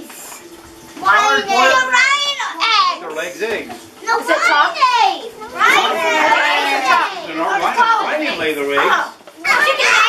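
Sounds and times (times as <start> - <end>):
young children talking: 1.0 - 3.1, 4.0 - 10.0.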